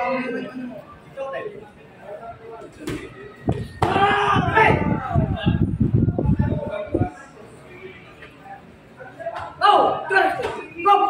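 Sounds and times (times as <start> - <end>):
loud voices: 0.0 - 11.0.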